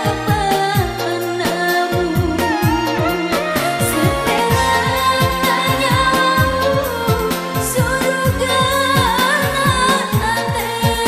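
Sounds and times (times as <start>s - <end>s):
keyboard arrangement: 0.0s - 11.0s
pop song singing: 0.0s - 11.0s.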